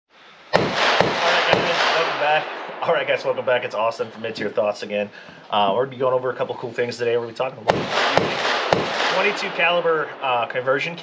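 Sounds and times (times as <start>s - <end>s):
sharp bangs: 0.5s - 5.0s, 7.5s - 11.0s.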